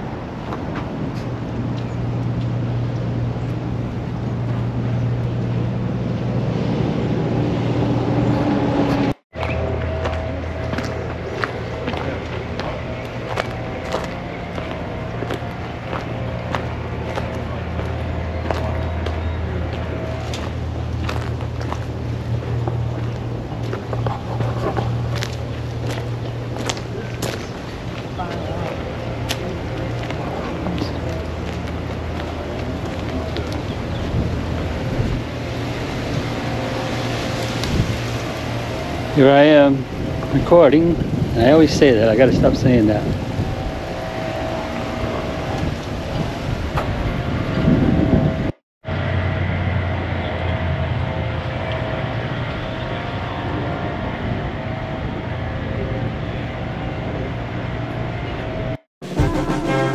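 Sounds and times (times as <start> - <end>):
steady low hum: 0.0 - 59.9
footsteps on sandy path: 8.8 - 40.3
faint voices: 9.4 - 35.7.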